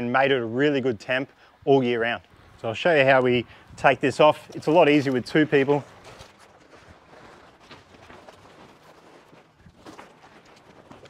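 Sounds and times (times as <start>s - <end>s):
plastic pool cover rustling: 2.7s - 11.0s.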